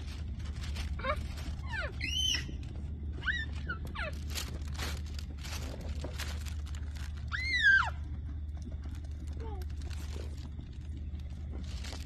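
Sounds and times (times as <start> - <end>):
steady low rumble: 0.0 - 12.0
animal whining calls: 1.0 - 4.6.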